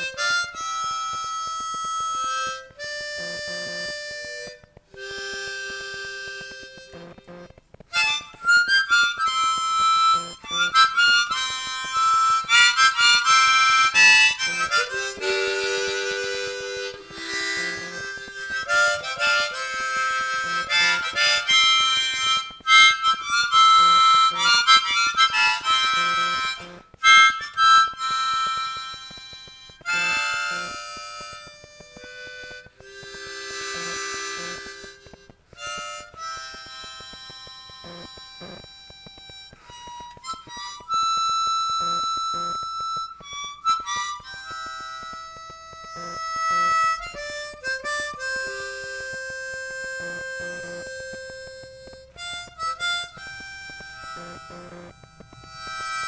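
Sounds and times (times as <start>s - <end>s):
harmonica playing: 0.0s - 56.0s.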